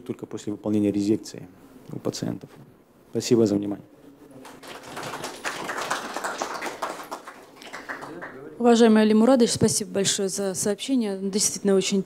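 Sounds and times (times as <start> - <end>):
audience applauding: 4.4 - 8.5.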